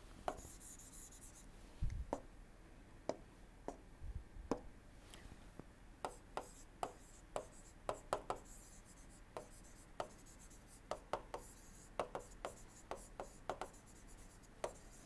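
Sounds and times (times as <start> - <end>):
stylus tapping and scratching screen: 0.3 - 1.4, 6.1 - 15.0.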